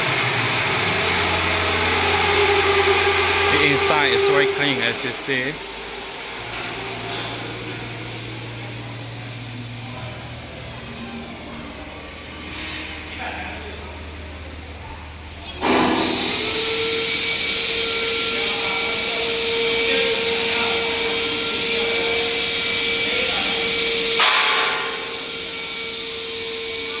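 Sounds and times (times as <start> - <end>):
low machinery hum: 0.0 - 27.0
machine whine with hiss: 0.0 - 27.0.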